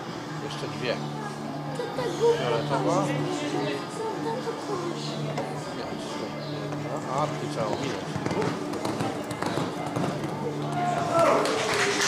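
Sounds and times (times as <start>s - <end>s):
indistinct voices talking: 0.3s - 11.7s.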